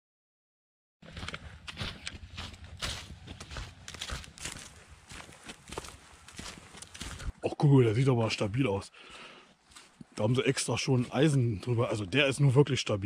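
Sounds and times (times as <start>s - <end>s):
footsteps crunching dry leaves: 1.0s - 7.4s, 9.6s - 10.1s.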